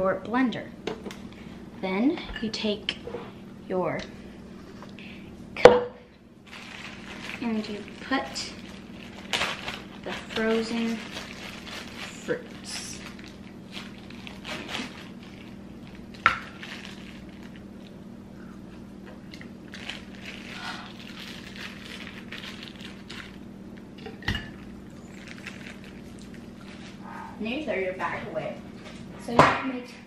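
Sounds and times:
plastic bag rustling: 6.4s - 18.0s, 19.2s - 23.5s, 24.4s - 27.6s.

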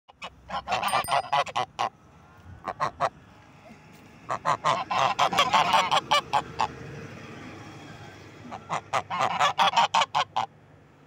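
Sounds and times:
geese honking: 4.3s - 6.7s, 8.5s - 10.5s.

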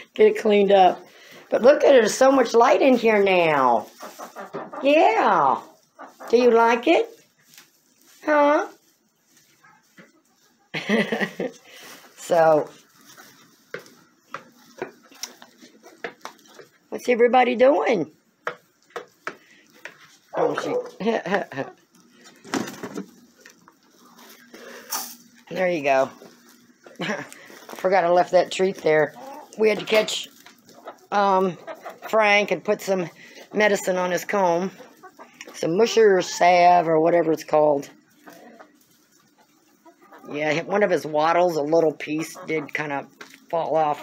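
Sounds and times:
chicken clucking: 0.4s - 16.9s, 17.9s - 44.0s.

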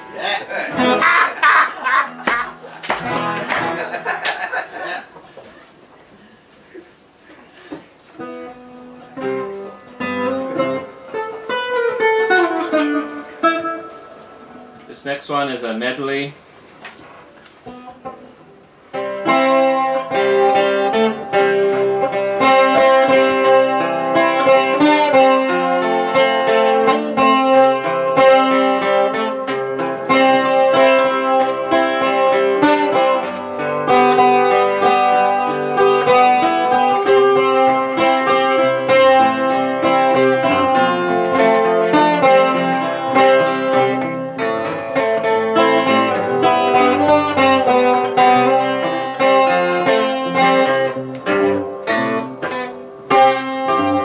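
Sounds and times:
acoustic guitar playing: 0.0s - 54.0s.

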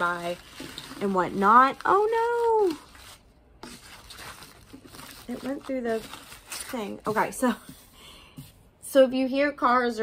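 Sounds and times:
paper mat rustling and crinkling: 0.0s - 7.8s.

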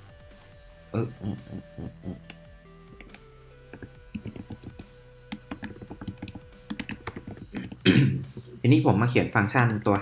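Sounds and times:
computer keyboard typing: 3.0s - 7.8s.

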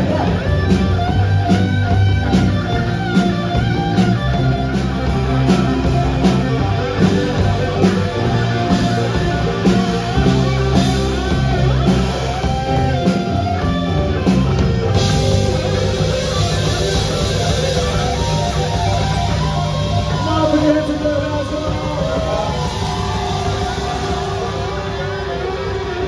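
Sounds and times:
drum kit steady beat: 0.0s - 26.0s
electric bass: 0.0s - 26.0s
electric guitars: 0.0s - 26.0s.

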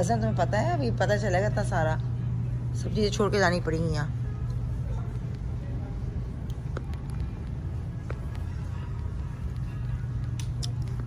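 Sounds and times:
shop background hum: 0.0s - 11.0s.

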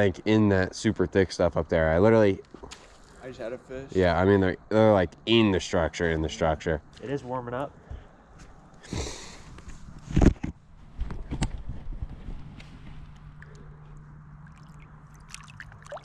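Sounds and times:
faint low hum: 0.0s - 16.0s
water splashing around boat: 13.2s - 16.0s.

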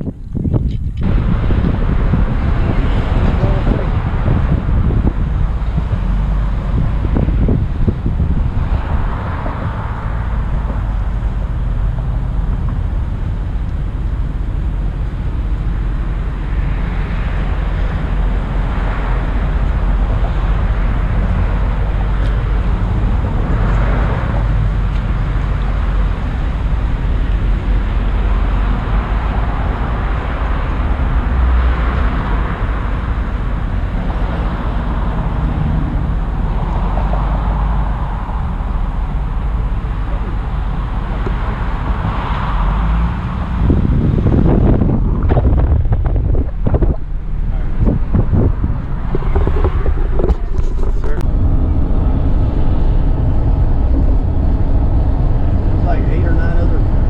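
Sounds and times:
street traffic rumble: 0.0s - 57.0s
wind buffeting microphone: 0.0s - 57.0s
muffled voices: 49.2s - 51.3s.

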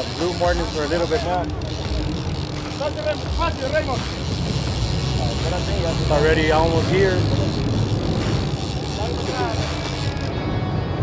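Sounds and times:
boat engines rumbling: 0.0s - 11.0s.

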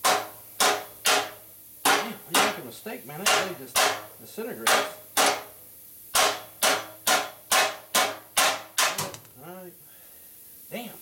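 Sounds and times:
hammer striking steel frame: 0.0s - 9.3s.

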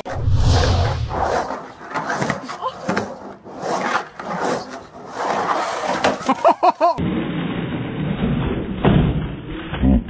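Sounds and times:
skateboard crashing on concrete: 1.3s - 6.4s.

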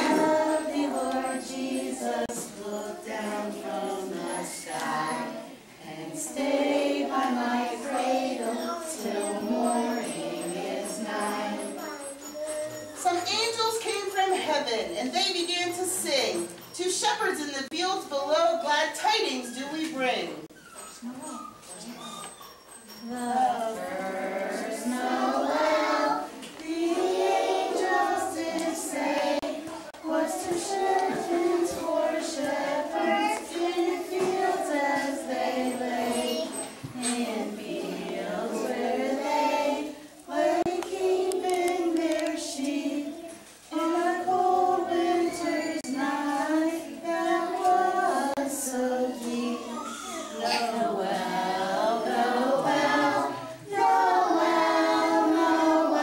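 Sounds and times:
young children singing: 0.0s - 15.0s, 23.0s - 56.0s
faint high-pitched voices: 8.1s - 16.8s, 49.1s - 51.2s.

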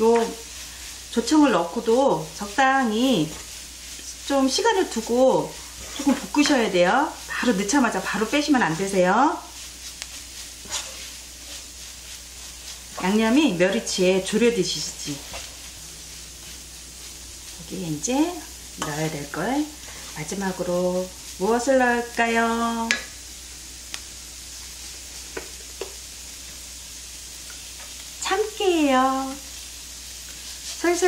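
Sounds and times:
wooden spatula scraping pan: 0.0s - 22.2s, 30.3s - 31.0s
food sizzling in a frying pan: 0.0s - 31.0s
wooden spoon clicking on pan: 22.8s - 23.2s.

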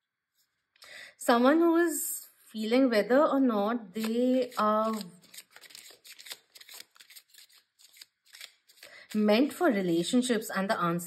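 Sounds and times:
cards being shuffled: 4.0s - 9.6s.

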